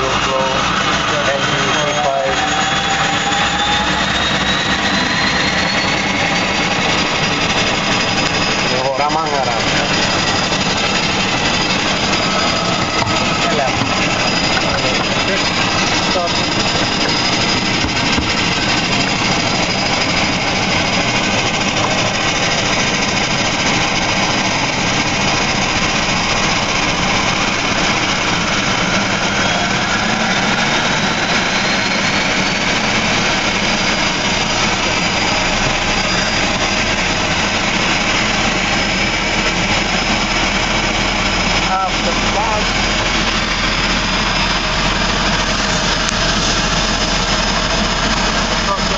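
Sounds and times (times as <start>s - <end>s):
turbine whine: 0.0s - 48.9s
turboprop engine running: 0.0s - 48.9s.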